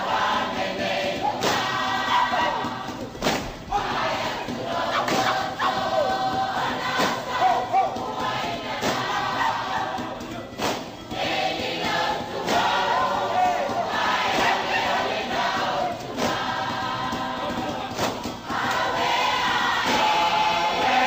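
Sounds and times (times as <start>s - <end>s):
choir singing in harmony: 0.0s - 21.0s
sharp percussive hits: 0.0s - 21.0s.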